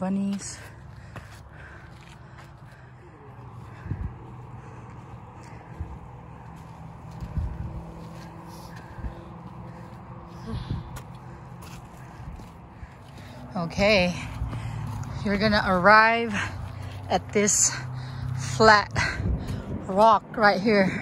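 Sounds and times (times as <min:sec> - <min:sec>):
steady low hum: 0:00.0 - 0:21.0
footsteps scuffing on dirt: 0:00.2 - 0:02.9, 0:03.6 - 0:17.3.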